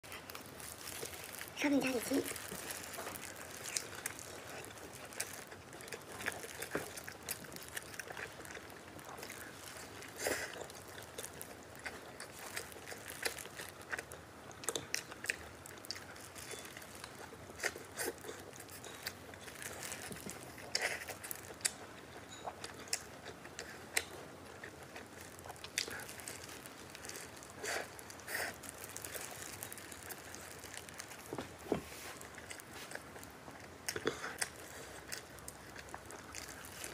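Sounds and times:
biting and chewing food: 0.0 - 36.9.

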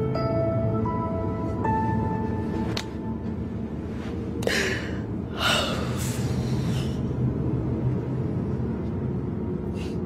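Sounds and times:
soft low music: 0.0 - 10.0.

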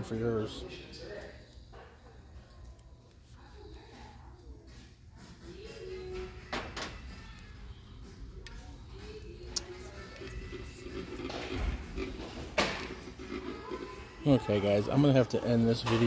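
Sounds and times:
distant voices: 0.0 - 16.0
faint background music: 0.0 - 16.0.

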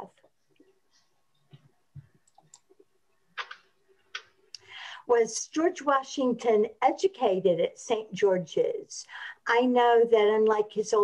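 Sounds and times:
person speaking: 3.4 - 11.0.

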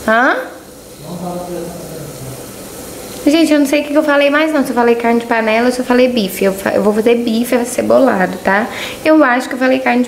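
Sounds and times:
low steady hiss: 0.0 - 10.0.

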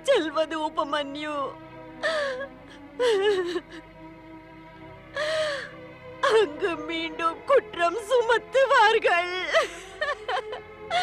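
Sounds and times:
woman crying: 0.0 - 0.8, 1.9 - 4.0, 5.2 - 7.3, 8.0 - 11.0
background music drone: 0.0 - 11.0.

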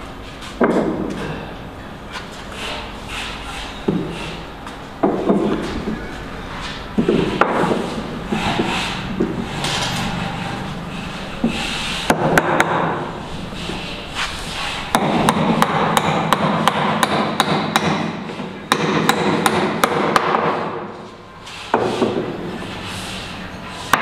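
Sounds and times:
hammer striking wood: 12.1 - 13.0, 14.9 - 20.8.

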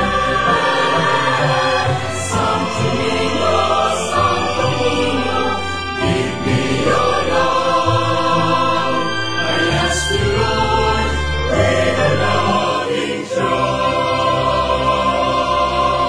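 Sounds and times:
choir singing a hymn: 0.0 - 16.0
low sustained accompaniment: 0.0 - 16.0.

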